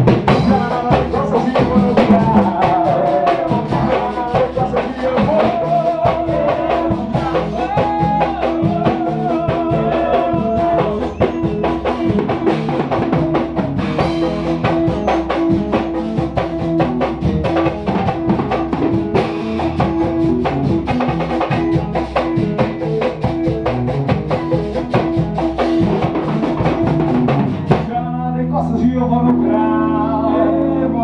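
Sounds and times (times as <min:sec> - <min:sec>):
drum kit beat: 0:00.0 - 0:28.3
bass notes: 0:00.0 - 0:31.0
electric guitar: 0:00.0 - 0:31.0.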